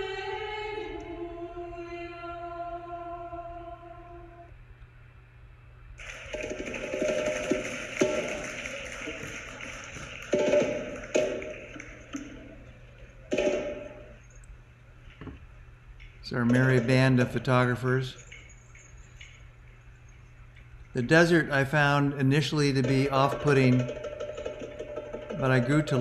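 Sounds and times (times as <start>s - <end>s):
choral chant: 0.0s - 4.5s.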